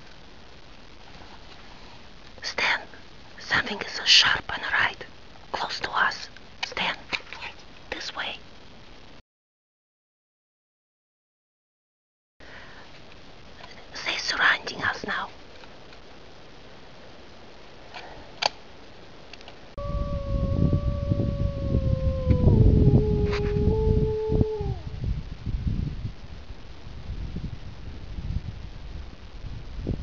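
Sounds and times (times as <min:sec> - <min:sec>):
person whispering: 0:02.4 - 0:08.4, 0:13.6 - 0:15.3
long howl: 0:19.8 - 0:25.0
wind rumble on microphone: 0:19.8 - 0:30.0.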